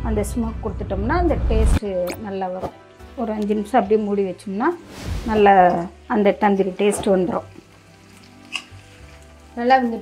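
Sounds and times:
chicken sizzling in pan: 7.4 - 10.0.

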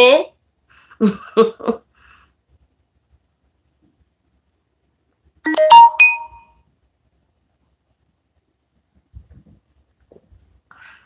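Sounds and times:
electronic chime rising notes: 5.5 - 6.5.

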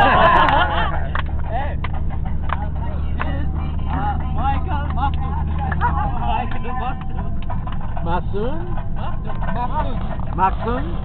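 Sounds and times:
van engine and road noise: 0.0 - 11.0
voices chattering: 0.0 - 11.0.

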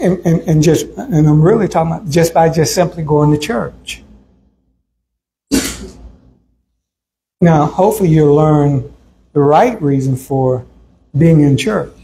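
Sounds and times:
man clearing throat: 5.5 - 6.1.

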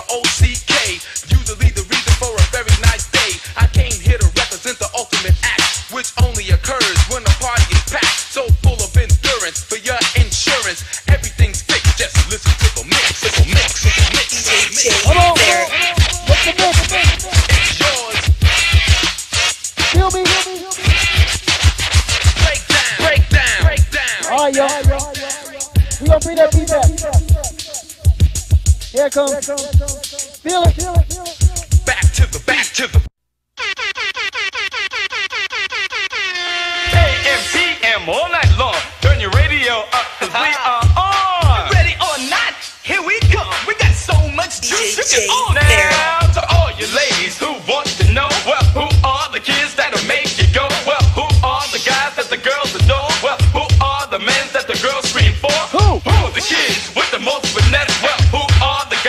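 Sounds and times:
rapping over a beat: 0.0 - 33.1, 36.9 - 59.0.

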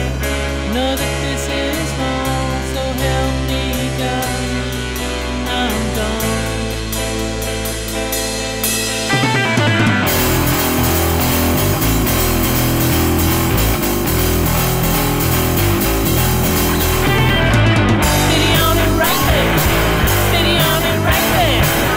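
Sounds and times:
rock band playing: 0.0 - 21.9.

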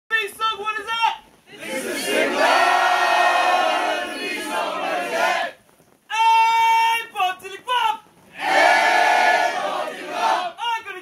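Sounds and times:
group shout-singing a chant: 1.5 - 5.5, 8.4 - 10.6.

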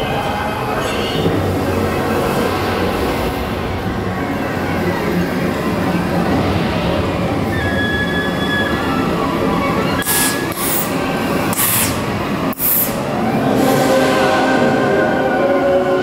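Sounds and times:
ride vehicle rumbling on track: 0.0 - 16.0
sharp hissing bursts: 10.0 - 13.0.

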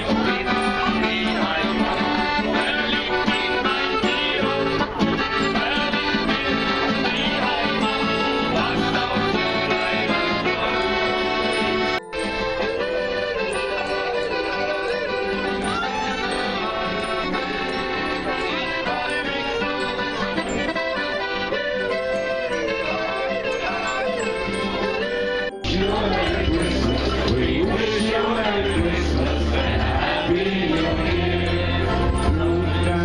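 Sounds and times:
man singing: 0.0 - 11.6, 12.6 - 20.7, 21.7 - 33.0
acoustic guitar: 0.0 - 33.0
piano accordion: 0.0 - 33.0.

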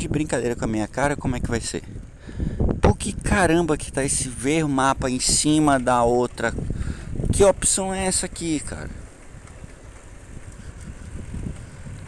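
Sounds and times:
low background rumble: 0.1 - 12.0.

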